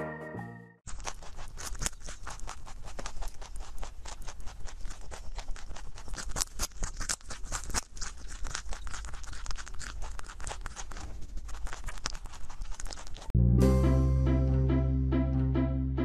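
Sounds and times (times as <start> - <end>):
rabbit crunching carrot: 0.9 - 13.4.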